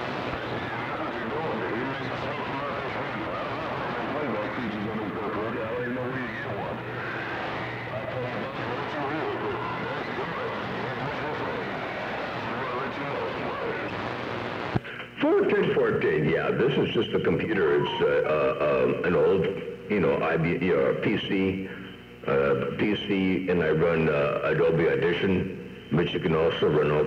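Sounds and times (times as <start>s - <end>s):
radio static and hiss: 0.0s - 27.0s
faint garbled radio voice: 0.4s - 7.1s, 7.7s - 14.0s.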